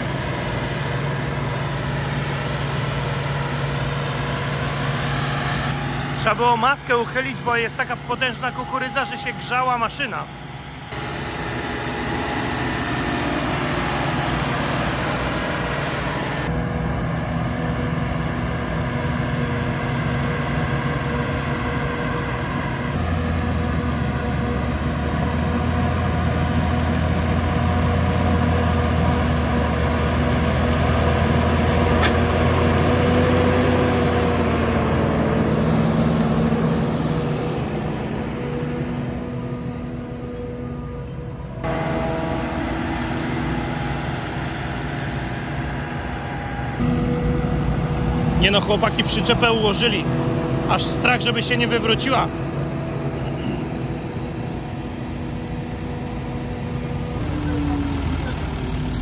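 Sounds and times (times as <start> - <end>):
loud engine drone: 0.0 - 59.0.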